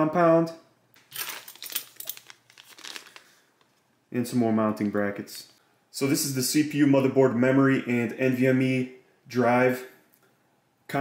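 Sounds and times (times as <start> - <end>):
plastic bag crinkling: 1.0 - 3.9.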